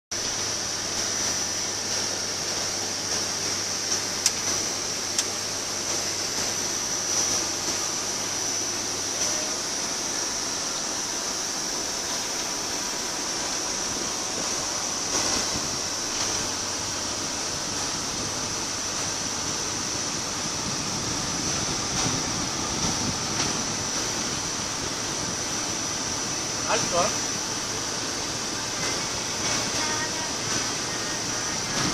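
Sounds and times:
road and wind noise in car: 0:00.1 - 0:31.9.

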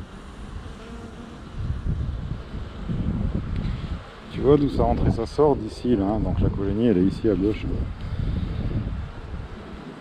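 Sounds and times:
bees buzzing: 0:00.0 - 0:10.0
wind rumble on microphone: 0:00.5 - 0:10.0.

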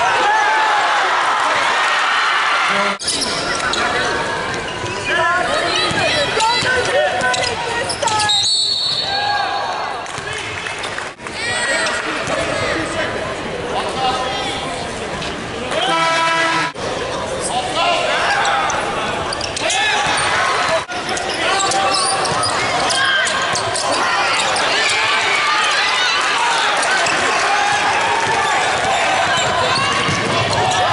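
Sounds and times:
voices and shouts: 0:00.0 - 0:10.5, 0:17.5 - 0:30.9
sneakers squeaking: 0:02.7 - 0:11.0, 0:18.3 - 0:30.9
basketball bouncing on court: 0:05.8 - 0:07.5, 0:27.0 - 0:30.9
short shoe squeaks: 0:06.5 - 0:09.1, 0:21.1 - 0:24.8.

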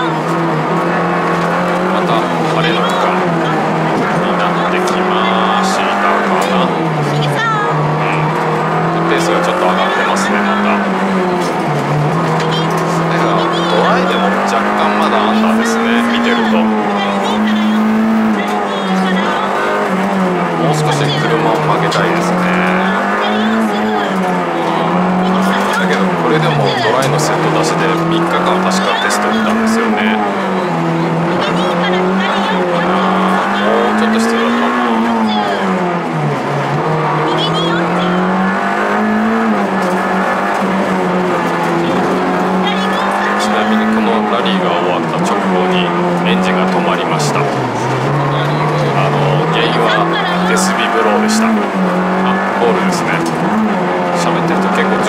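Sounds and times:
car engine revving hard: 0:00.0 - 0:55.0.

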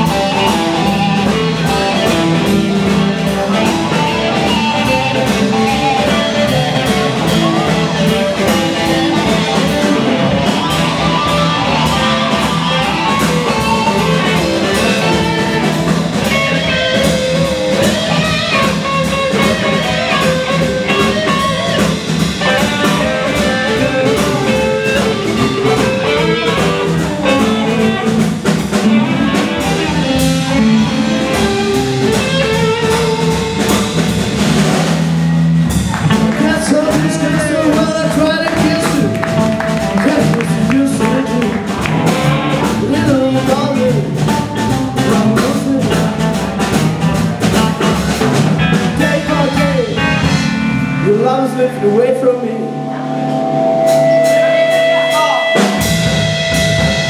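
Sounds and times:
bass guitar: 0:00.0 - 0:57.0
drum kit: 0:00.0 - 0:57.0
electric guitars: 0:00.0 - 0:57.0.

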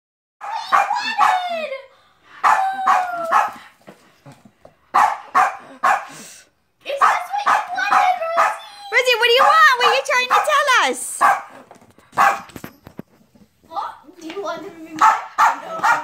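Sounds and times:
small dog barking: 0:00.4 - 0:01.6, 0:02.4 - 0:03.6, 0:04.9 - 0:06.2, 0:06.9 - 0:08.7, 0:09.3 - 0:11.6, 0:12.2 - 0:12.6, 0:15.0 - 0:16.0.

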